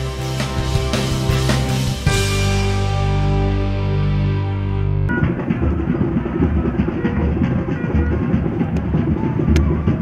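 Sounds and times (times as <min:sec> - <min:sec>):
muffled drum-heavy music: 0:00.0 - 0:10.0.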